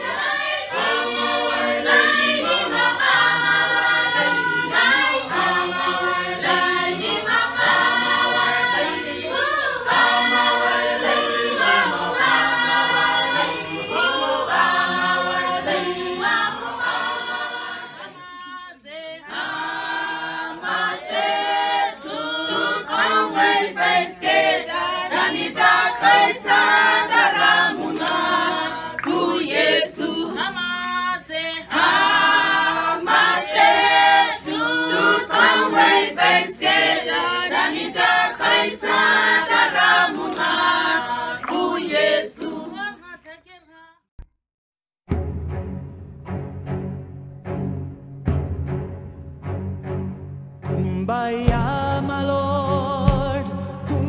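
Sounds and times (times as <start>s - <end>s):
choir singing a cappella: 0.0s - 43.8s, 52.6s - 54.0s.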